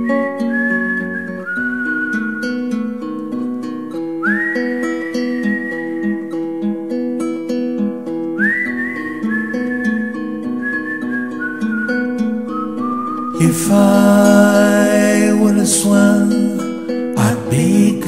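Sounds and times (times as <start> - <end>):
whistled melody: 0.0 - 6.8, 8.3 - 14.6
fingerpicked acoustic guitar: 0.0 - 18.0.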